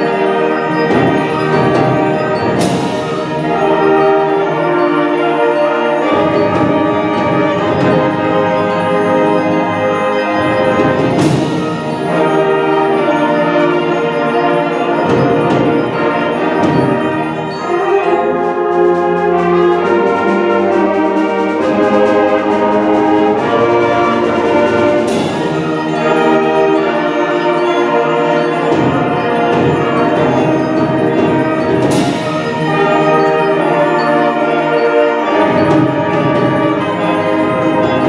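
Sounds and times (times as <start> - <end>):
concert band playing: 0.0 - 38.0.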